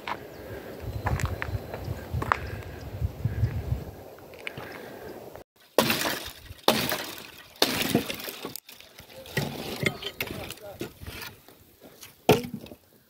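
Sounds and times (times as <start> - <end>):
branches knocking and clattering: 5.6 - 11.4
wood splintering: 5.7 - 11.4
axe chopping dry wood: 5.8 - 8.5, 12.3 - 12.8.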